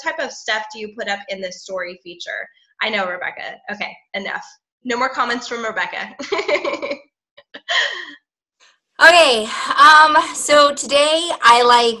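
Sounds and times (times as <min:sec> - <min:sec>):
woman laughing breathily: 0:07.6 - 0:08.2.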